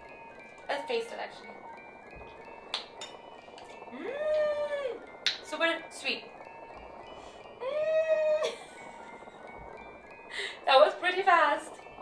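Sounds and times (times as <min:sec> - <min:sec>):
soft chime-like background music: 0:00.0 - 0:12.0.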